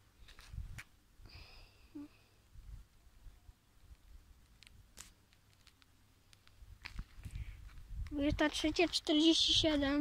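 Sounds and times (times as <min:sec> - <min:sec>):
faint footsteps on road: 0:00.0 - 0:01.0, 0:03.8 - 0:10.0.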